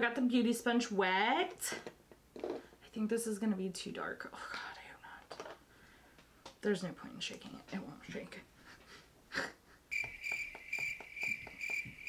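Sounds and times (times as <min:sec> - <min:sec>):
crickets chirping sound effect: 0:09.9 - 0:12.0.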